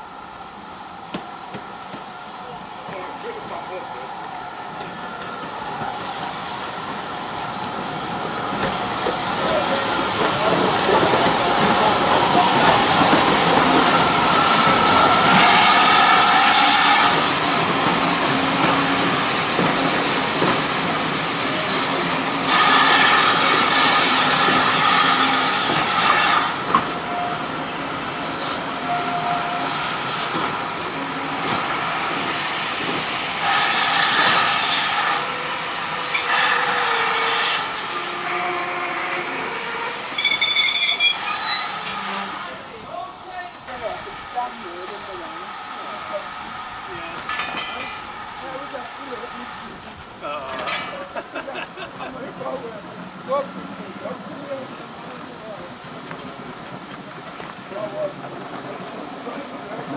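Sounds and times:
steam hissing: 0.0 - 59.9
steam train passing: 0.0 - 59.9
wheels clicking over rail joints: 50.4 - 51.3.

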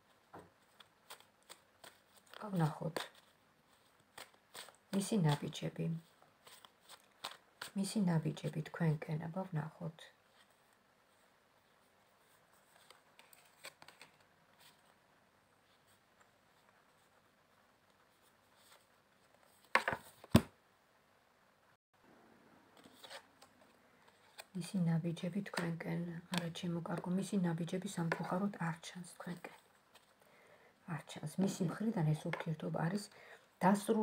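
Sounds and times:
cards being shuffled: 0.5 - 8.6, 12.3 - 14.9, 17.9 - 20.5, 22.8 - 24.5.

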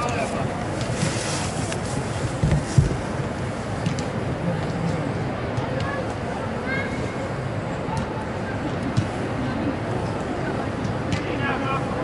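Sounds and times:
faint players' voices: 0.0 - 12.0
indoor sports hall background noise: 0.0 - 12.0.

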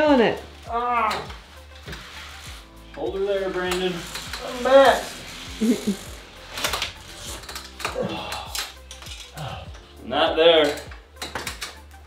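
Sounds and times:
drywall taper clicking and ratcheting: 6.5 - 9.9, 10.6 - 11.9.

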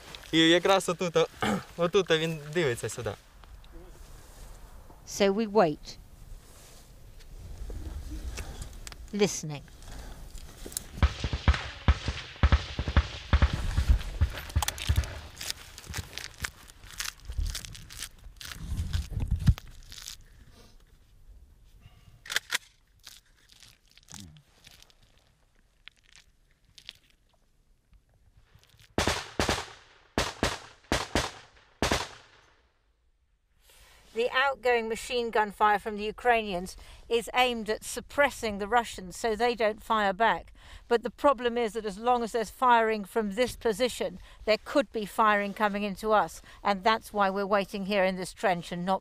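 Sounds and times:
machine-gun fire: 11.0 - 15.3, 29.0 - 32.4.

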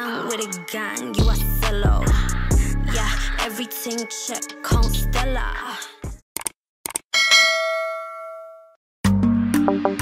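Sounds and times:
music with a steady beat: 0.2 - 6.2, 9.1 - 10.0
bell-like ding: 7.2 - 8.8.

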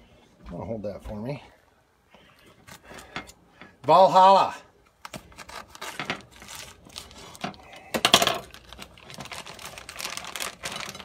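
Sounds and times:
knife and package clicks and scrapes: 5.0 - 11.0.

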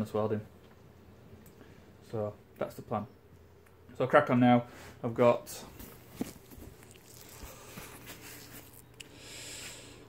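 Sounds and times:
faint scuffs and ticks: 5.7 - 9.0.

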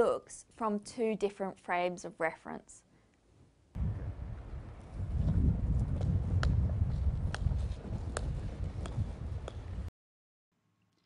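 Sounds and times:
skateboard wheels rolling on paving: 4.2 - 9.9
golf ball bouncing on ground: 5.9 - 6.6.

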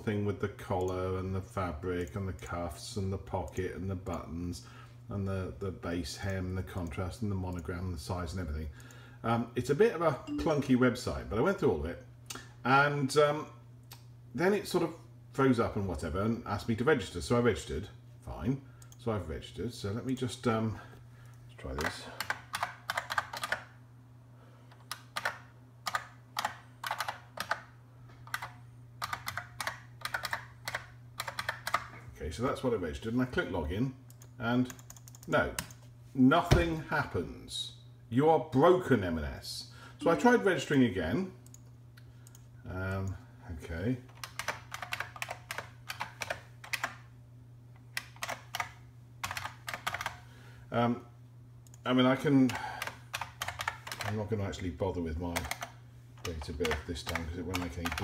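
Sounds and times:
low steady hum: 0.0 - 58.0
keyboard typing: 21.8 - 23.7, 24.7 - 31.9, 34.1 - 35.8, 44.1 - 47.0, 47.9 - 50.2, 52.4 - 54.2, 55.3 - 58.0.

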